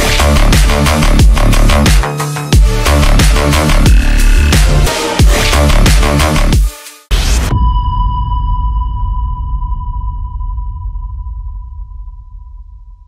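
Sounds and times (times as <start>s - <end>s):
cinematic impact boom: 3.0s - 4.9s
high steady ringing tone: 7.6s - 12.2s.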